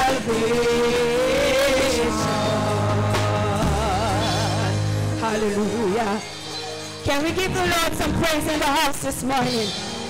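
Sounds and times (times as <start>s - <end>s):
steady lower accompaniment: 0.0s - 10.0s.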